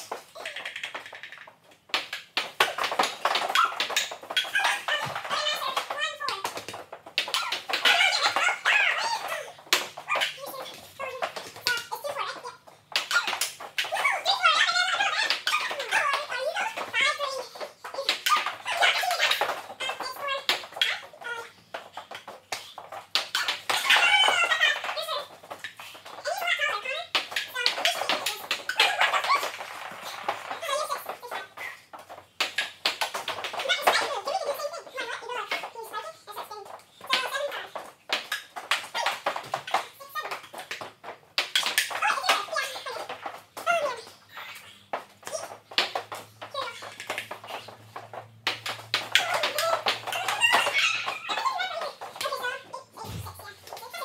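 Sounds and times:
ping pong ball clicking: 0.4s - 2.3s
children calling out: 49.1s - 54.0s.

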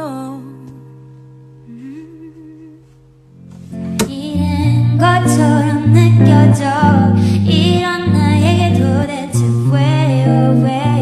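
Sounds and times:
woman softly humming: 1.6s - 3.0s.

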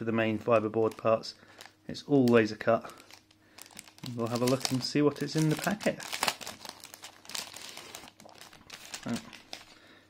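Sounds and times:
plastic packet crinkling: 0.3s - 10.0s
paper rustling: 2.8s - 9.8s.

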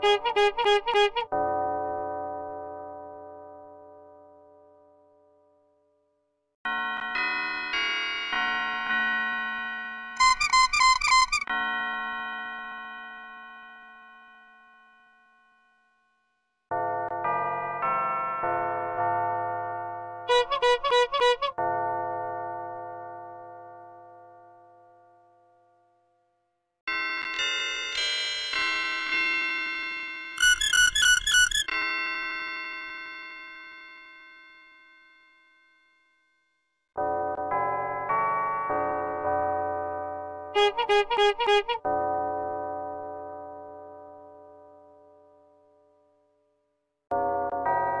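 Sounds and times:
bell-like electronic jingle: 10.2s - 12.0s.

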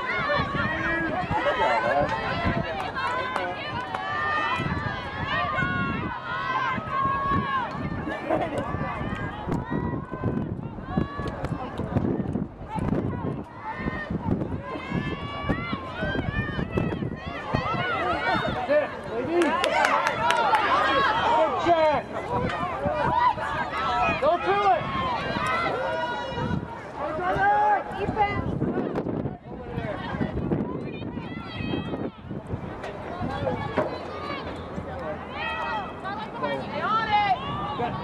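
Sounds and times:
voices shouting and calling: 0.0s - 38.0s.

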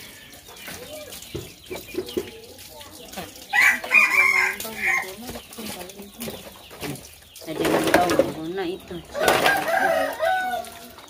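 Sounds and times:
rooster crowing: 3.6s - 5.1s, 9.2s - 11.0s.

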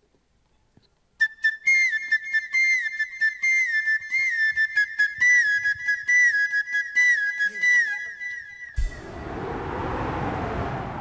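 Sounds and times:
bamboo flute solo: 1.2s - 9.1s.

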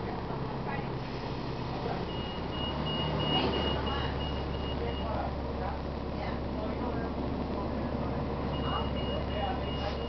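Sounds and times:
diesel engine rumble: 0.0s - 10.0s
bus warning beeper: 2.0s - 5.3s, 8.4s - 10.0s.

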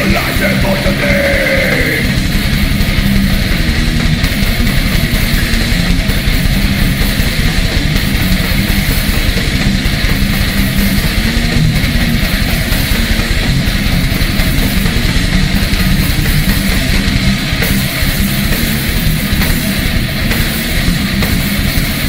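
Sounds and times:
distorted electric guitars: 0.0s - 22.0s
drums: 0.0s - 22.0s.

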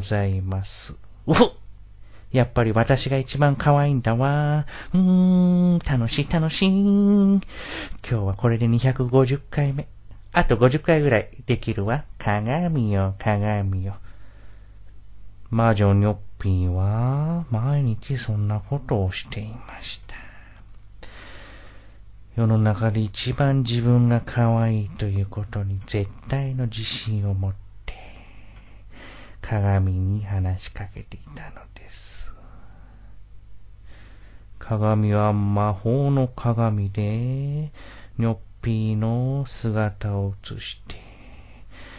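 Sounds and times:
low male voice in held tones: 0.0s - 1.6s, 2.4s - 7.4s
man chanting in low voice: 0.0s - 1.7s, 2.3s - 14.1s, 15.4s - 20.6s, 22.3s - 28.2s, 29.4s - 32.6s, 34.6s - 41.7s.

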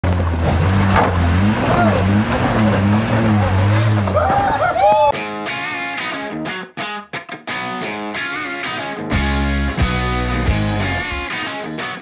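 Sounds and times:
car engine running under load: 0.0s - 4.2s.

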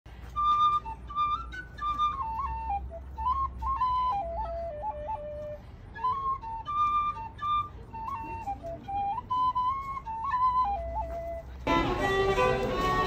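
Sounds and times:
small flute tune: 0.1s - 13.0s.

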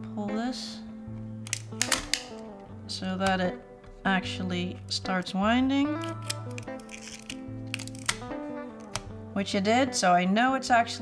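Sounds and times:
soft guitar music: 0.0s - 11.0s
camera film mechanism clicking: 1.4s - 2.4s, 6.0s - 9.1s.

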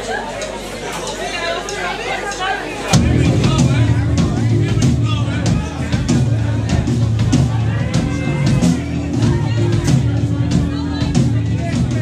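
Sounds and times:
voices: 0.0s - 12.0s
hard rock band playing: 2.9s - 12.0s.

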